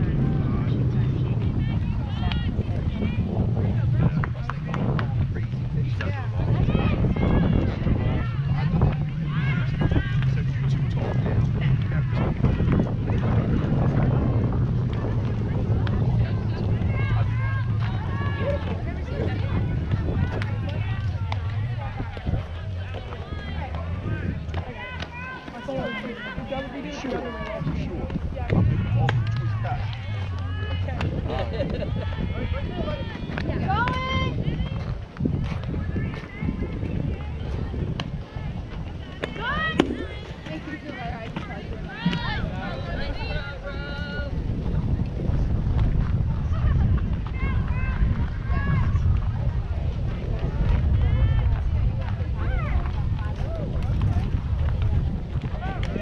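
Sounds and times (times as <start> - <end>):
faint voices: 0.0 - 56.0
wind rumble on microphone: 0.0 - 56.0.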